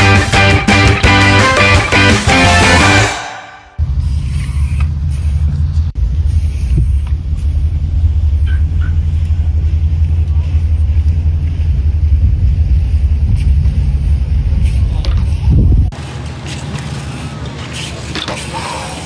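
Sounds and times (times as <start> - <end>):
steady low rumble: 3.6 - 17.4.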